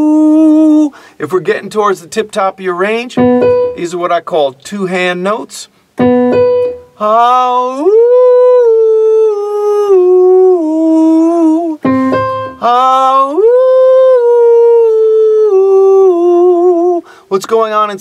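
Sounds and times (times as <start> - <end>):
man singing sliding vowel: 0.0 - 1.0, 7.0 - 17.1
keyboard notes: 3.0 - 4.2, 6.0 - 7.1, 11.8 - 13.2.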